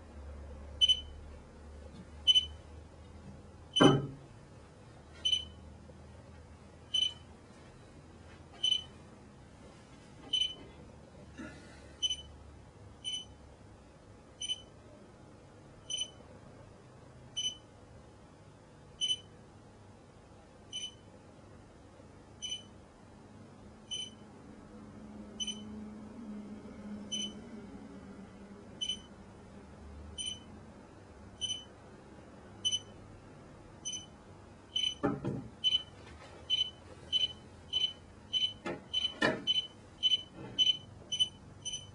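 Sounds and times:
short high-pitched electronic beeps: 34.8s - 35.0s.

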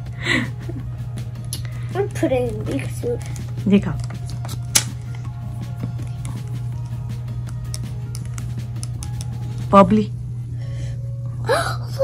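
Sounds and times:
background music: 0.0s - 12.0s
plastic stick clicking on cup: 5.8s - 9.5s.

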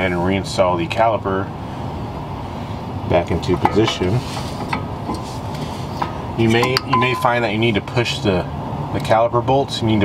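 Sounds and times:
steady low hum: 0.1s - 9.0s
light metal clicks and scrapes: 3.6s - 7.2s.

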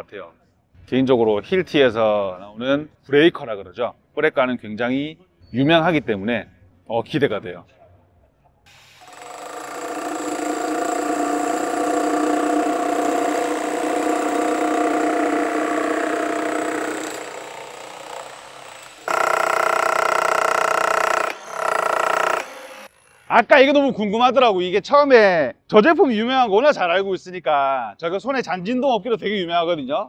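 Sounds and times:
jackhammers hammering concrete: 9.0s - 22.9s.

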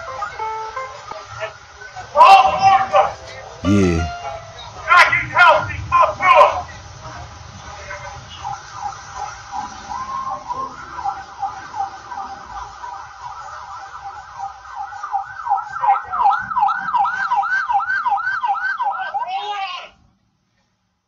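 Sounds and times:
siren wailing: 8.7s - 19.3s.

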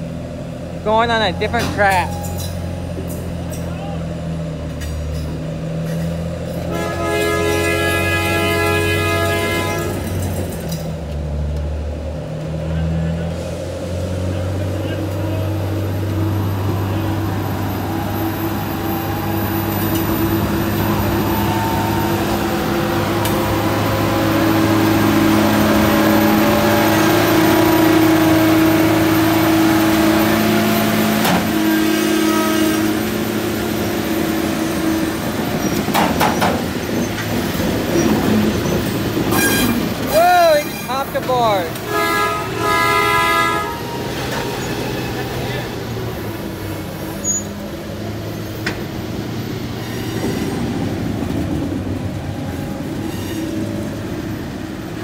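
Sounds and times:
diesel engine droning: 0.0s - 55.0s
railcars rolling on rails: 0.0s - 55.0s
sharp metallic clanks: 1.5s - 3.8s.

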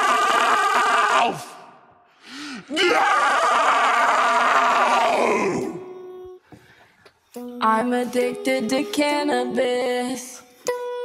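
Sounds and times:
rough strained vocal cry: 0.0s - 1.7s, 2.6s - 6.0s.

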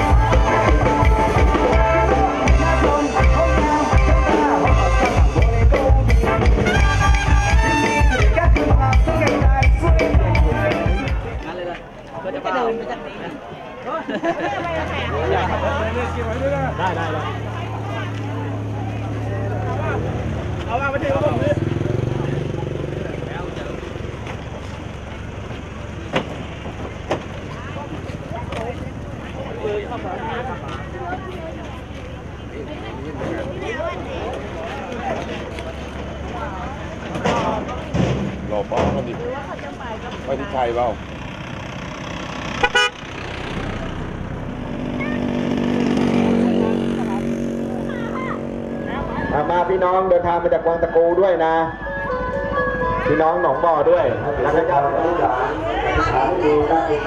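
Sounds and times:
people's voices: 0.0s - 57.0s
vehicle engine humming: 0.0s - 57.0s
motor engine running: 39.4s - 50.4s
vehicle horn toots: 42.6s - 43.1s.

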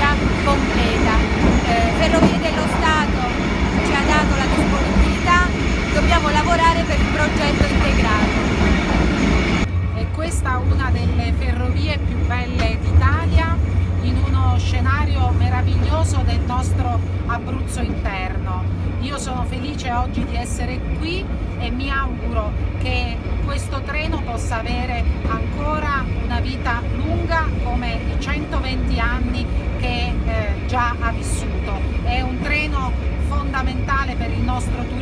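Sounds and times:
indistinct passenger chatter: 0.0s - 9.0s, 10.0s - 35.0s
steady low rumble: 0.0s - 35.0s
train running noise: 0.0s - 35.0s.

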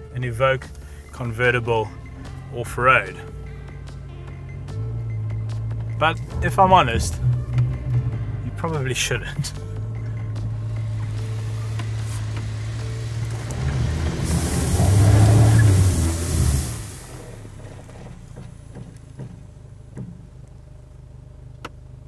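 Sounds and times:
car engine running: 0.0s - 22.0s
rushing spray of sand: 10.8s - 17.6s
wheels spinning in sand: 11.1s - 18.6s.

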